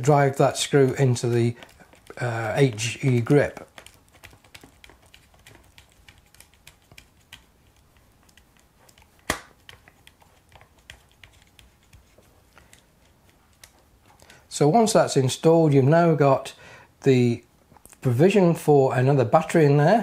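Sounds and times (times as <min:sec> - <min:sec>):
plastic grips handled: 0:00.0 - 0:14.3.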